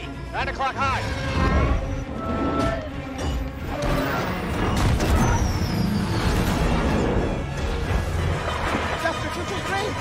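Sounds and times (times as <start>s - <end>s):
film score music: 0.0s - 10.0s.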